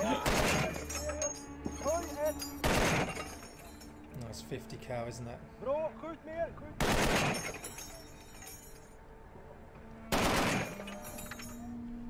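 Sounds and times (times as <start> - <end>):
metallic clinking and ringing: 0.0 - 4.2, 7.2 - 9.0, 10.4 - 11.9
heavy machine-gun fire: 2.6 - 3.1, 6.8 - 7.5, 10.1 - 10.8.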